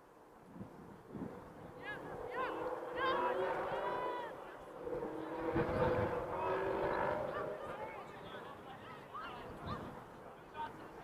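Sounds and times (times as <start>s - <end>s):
people shouting and yelling: 1.8s - 4.8s, 6.3s - 10.8s.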